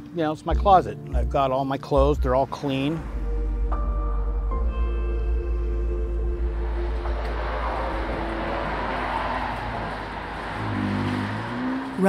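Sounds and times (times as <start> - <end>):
ambient music: 0.0 - 11.0
freeway traffic rushing: 2.0 - 12.0.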